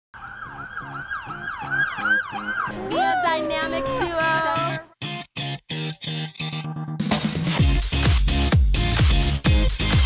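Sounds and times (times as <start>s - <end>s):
emergency siren yelping: 0.2s - 4.2s.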